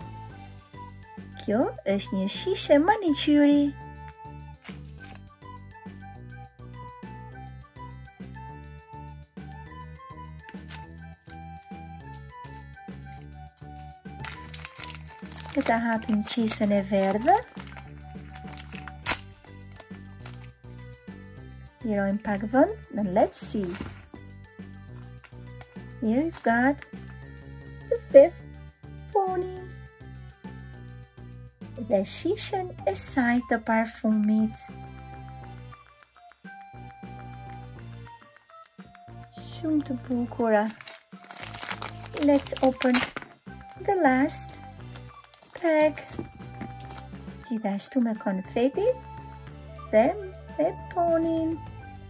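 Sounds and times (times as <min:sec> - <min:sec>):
foil bag crinkling: 0:12.5 - 0:20.6, 0:23.5 - 0:24.2, 0:40.6 - 0:43.8, 0:44.8 - 0:47.2
music with steady beat: 0:34.6 - 0:39.6, 0:43.2 - 0:47.4.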